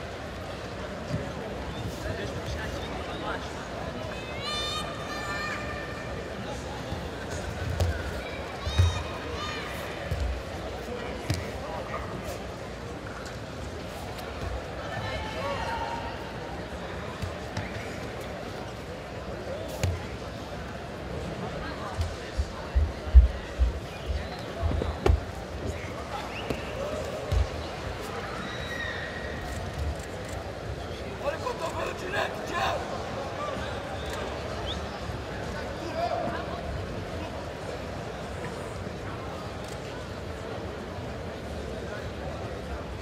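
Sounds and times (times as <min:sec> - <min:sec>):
arena crowd hubbub: 0:00.0 - 0:43.0.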